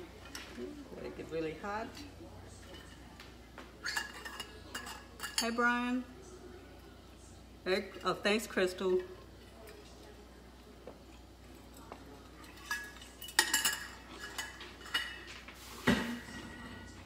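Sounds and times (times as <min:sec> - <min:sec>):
dishes and utensils clinking: 0:00.1 - 0:06.0, 0:11.0 - 0:17.0.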